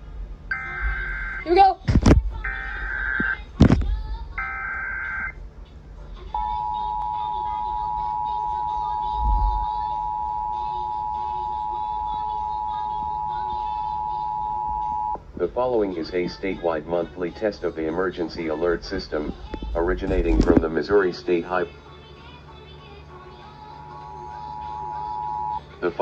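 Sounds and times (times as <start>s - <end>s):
two-tone alert signal: 0.5s - 1.5s, 6.4s - 15.2s
digital data tones: 0.5s - 1.7s, 2.4s - 3.4s.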